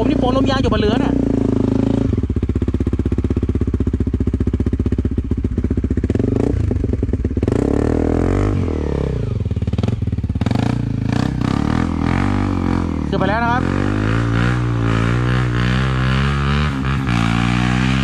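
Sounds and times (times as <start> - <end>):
dirt bike engines idling: 0.0 - 18.0
dirt bike revving: 0.0 - 18.0.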